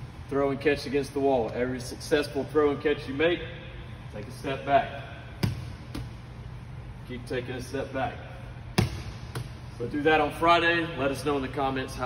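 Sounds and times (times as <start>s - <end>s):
ball thudding against wall: 5.4s - 6.2s, 8.8s - 9.6s.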